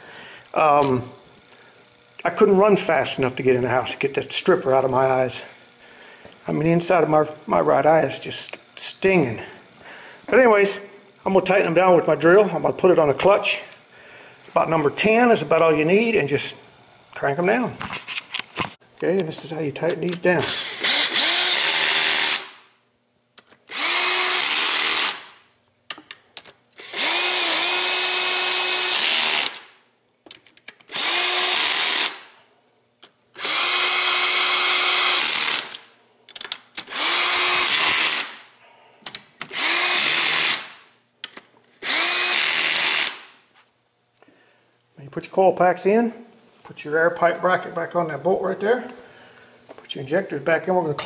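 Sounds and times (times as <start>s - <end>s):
power drill whining: 20.4s - 22.6s, 23.7s - 25.3s, 26.8s - 29.7s, 30.9s - 32.3s, 33.4s - 35.8s, 36.9s - 38.4s, 39.5s - 40.6s, 41.8s - 43.2s.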